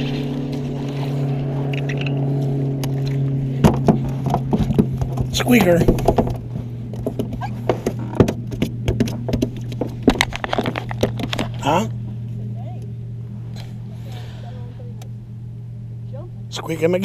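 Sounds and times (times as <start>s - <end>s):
steady low hum: 0.0s - 17.0s
knocks and clatter in a boat: 1.7s - 11.6s.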